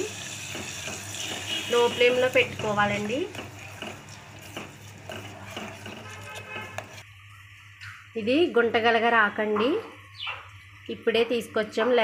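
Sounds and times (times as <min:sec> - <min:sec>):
light sizzle of frying: 0:00.0 - 0:12.0
ladle scraping a steel pot: 0:02.7 - 0:07.1.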